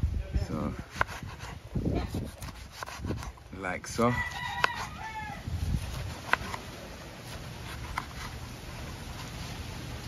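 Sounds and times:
rooster crowing: 4.0 - 5.6.

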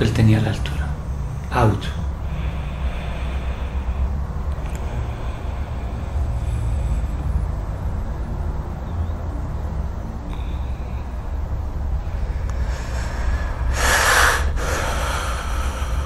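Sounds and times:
distant road traffic rumble: 0.0 - 16.0.

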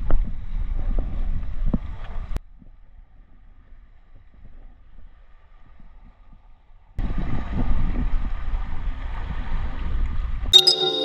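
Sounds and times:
ambient music: 10.6 - 11.0
bright chime: 10.6 - 11.0.

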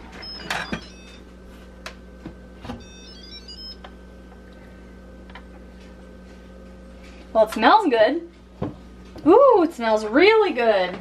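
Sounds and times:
faint steady hum: 0.0 - 11.0
electronic tones: 0.2 - 1.2, 2.8 - 3.8.

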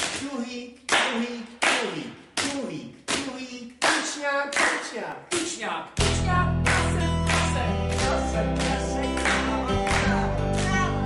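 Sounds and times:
hand claps: 0.0 - 11.0.

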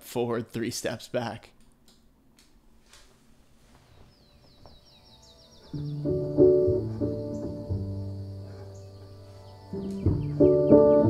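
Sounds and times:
faint bird trill: 4.1 - 11.0.

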